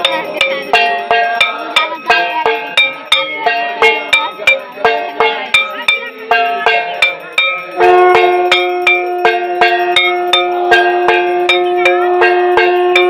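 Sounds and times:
long steady tone: 0:00.0 - 0:13.0
metal bells struck rapidly: 0:00.0 - 0:13.0.

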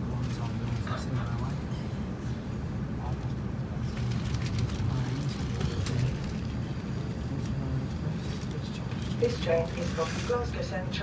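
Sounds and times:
train rumbling on track: 0:00.0 - 0:11.0.

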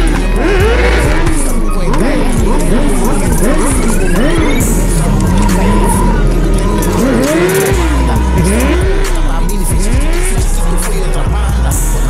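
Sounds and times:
hip-hop beat with low bass: 0:00.0 - 0:12.0
motorcycle engines revving: 0:00.0 - 0:12.0.

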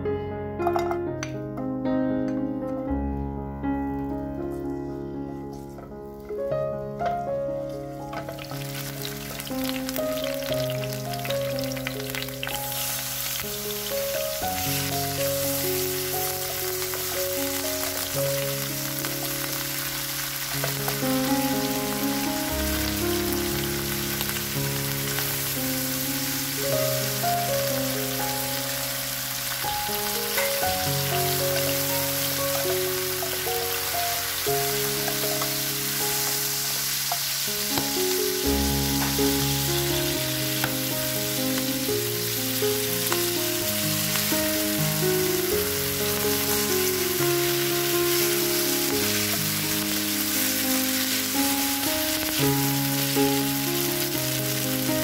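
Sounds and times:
slow music with held notes: 0:00.0 - 0:55.0
food sizzling in oil: 0:05.5 - 0:55.0.

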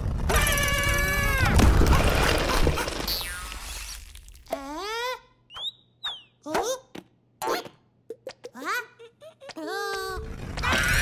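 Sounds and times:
loud cartoon rumbling: 0:00.0 - 0:03.1, 0:09.6 - 0:11.0.

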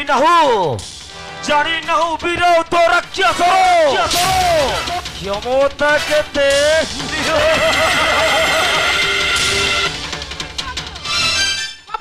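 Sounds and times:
stage music: 0:00.8 - 0:12.0.

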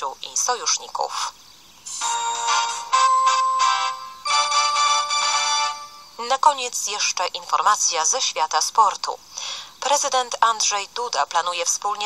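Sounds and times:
synthesized chime jingle: 0:01.9 - 0:06.1.

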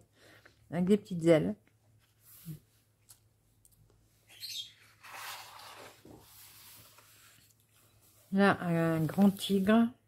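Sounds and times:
paper rustling: 0:04.8 - 0:08.2, 0:08.8 - 0:09.7.

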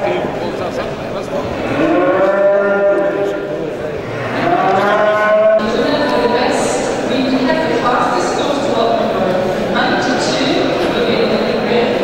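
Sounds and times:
cattle mooing: 0:01.6 - 0:05.6.

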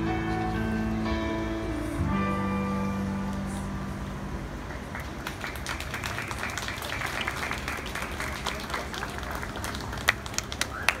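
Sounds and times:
audience applauding: 0:04.9 - 0:11.0.

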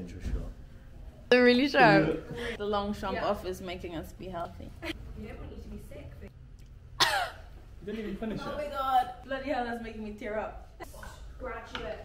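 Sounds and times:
woman coughing: 0:07.0 - 0:07.5.

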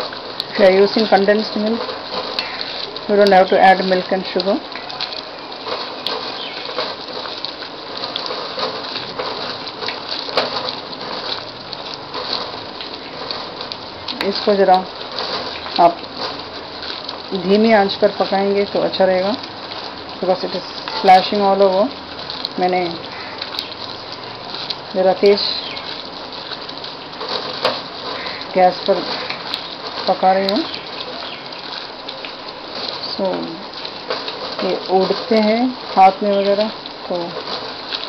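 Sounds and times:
mixture sizzling and bubbling: 0:00.0 - 0:38.0
spattering pops: 0:00.0 - 0:38.0.

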